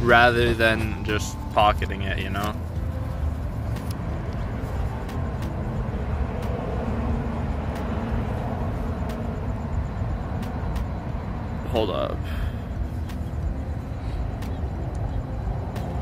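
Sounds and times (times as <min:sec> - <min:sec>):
low outdoor rumble: 0:00.0 - 0:16.0.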